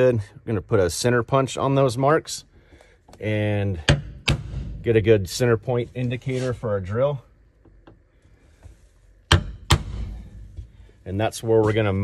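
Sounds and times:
center punch striking sheet metal: 3.9s - 4.9s, 9.3s - 10.6s.

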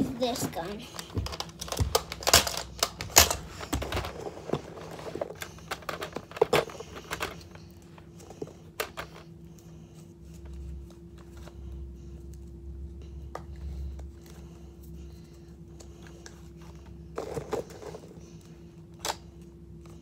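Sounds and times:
plastic toy blaster clicks and knocks: 1.2s - 4.1s.

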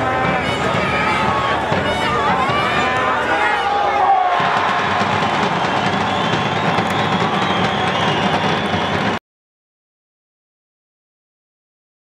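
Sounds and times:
stadium crowd cheering: 0.0s - 9.2s.

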